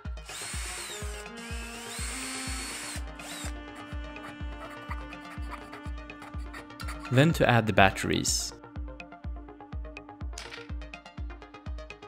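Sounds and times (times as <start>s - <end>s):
cordless drill whining: 0.0s - 5.7s
background music with steady beat: 0.0s - 12.0s.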